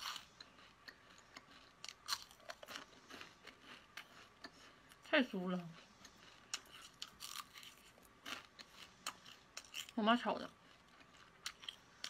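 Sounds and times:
faint crunching of chewing: 0.0s - 12.0s.

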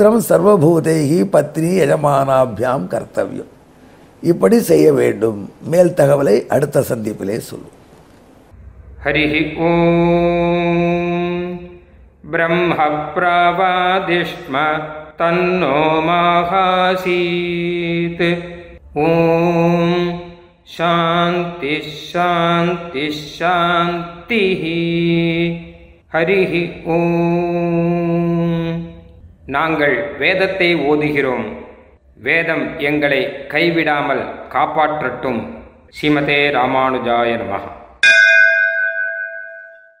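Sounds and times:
bell ringing: 38.0s - 40.0s.

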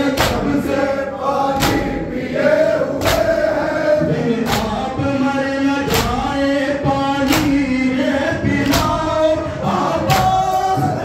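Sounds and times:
men chanting in unison: 0.0s - 11.0s
hands slapping chests: 0.1s - 0.6s, 1.6s - 2.0s, 3.0s - 3.5s, 4.4s - 4.9s, 5.9s - 6.3s, 7.2s - 7.7s.

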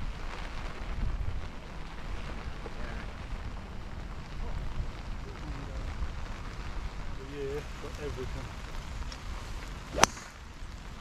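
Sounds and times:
rain: 0.0s - 11.0s
wind noise on microphone: 0.0s - 11.0s
golf club hitting ball: 9.9s - 10.4s.

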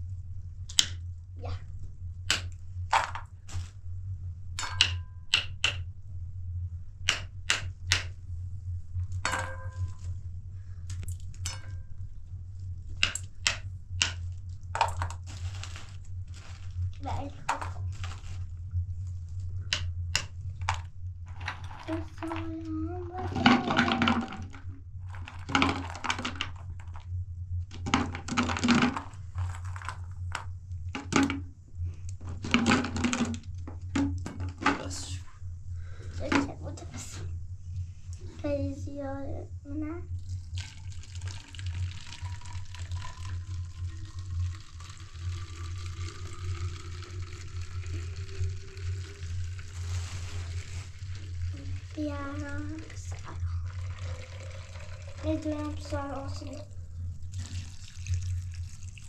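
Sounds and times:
wooden pin cracking nuts: 2.3s - 3.2s, 4.6s - 5.8s, 7.1s - 8.1s, 13.0s - 14.2s, 19.7s - 20.8s.

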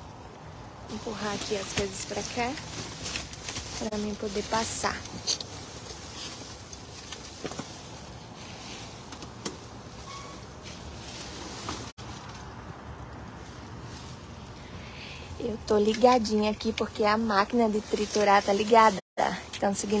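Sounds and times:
plastic bags rustling: 0.8s - 19.0s.

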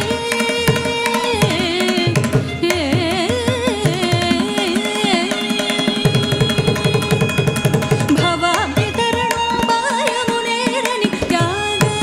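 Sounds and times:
mridangam drum strokes: 0.0s - 12.0s.

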